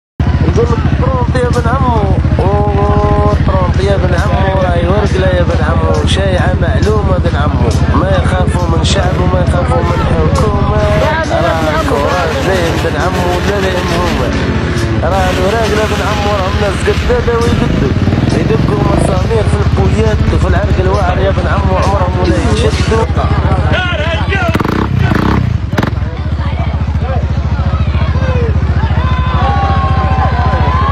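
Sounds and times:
held high melody line: 0.2s - 24.6s
car engine running under load: 0.2s - 30.9s
fast low pulsing: 0.2s - 30.9s
man singing: 0.4s - 23.8s.

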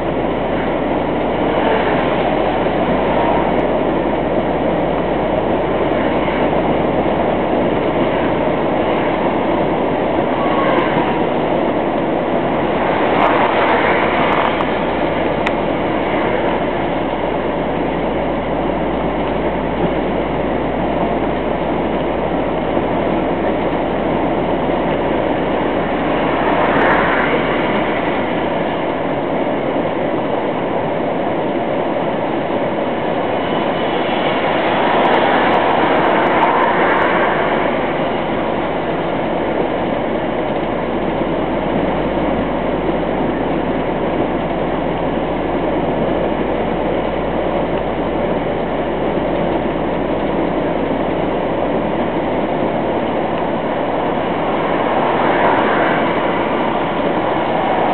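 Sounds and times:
truck engine and road noise: 0.0s - 57.9s.

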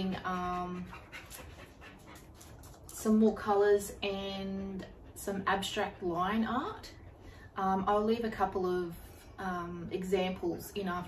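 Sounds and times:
dog panting: 0.0s - 8.6s.

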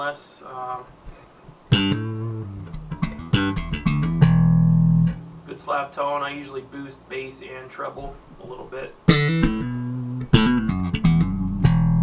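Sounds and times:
slap bass guitar: 1.7s - 5.5s, 8.4s - 12.0s.

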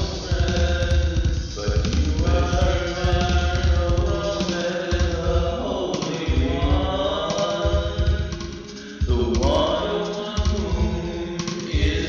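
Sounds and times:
chanting vocals: 0.0s - 12.0s
music with deep bass beat: 0.0s - 12.0s.

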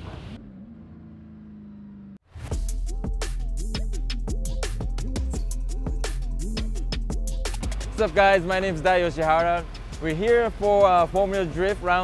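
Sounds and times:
car engine steady note: 0.0s - 2.2s.

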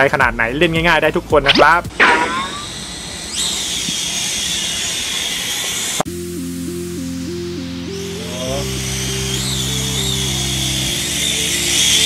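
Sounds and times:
toy drone motors whining: 2.0s - 6.1s, 7.9s - 12.0s
electronic music: 6.1s - 12.0s.

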